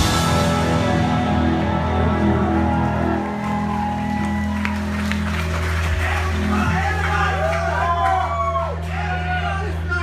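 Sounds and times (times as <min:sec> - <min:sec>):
sustained electric guitar and bass tones: 0:00.0 - 0:09.9
crowd clapping and cheering: 0:00.0 - 0:10.0.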